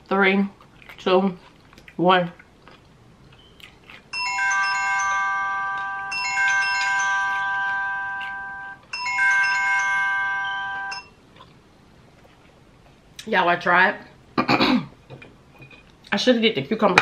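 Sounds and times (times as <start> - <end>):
timer alarm chiming melody: 4.1 - 11.2.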